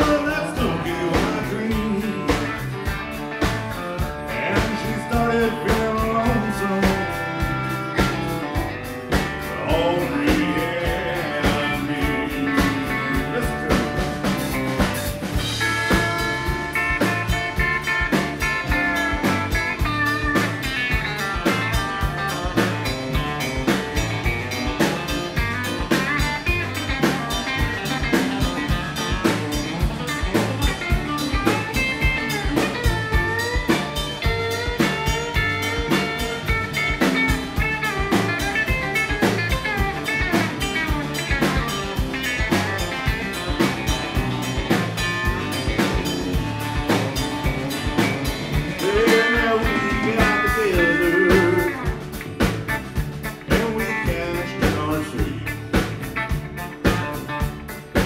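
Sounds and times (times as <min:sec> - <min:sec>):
electric guitar lead with bent notes: 0:00.0 - 0:58.0
steady drum-kit beat: 0:00.0 - 0:58.0.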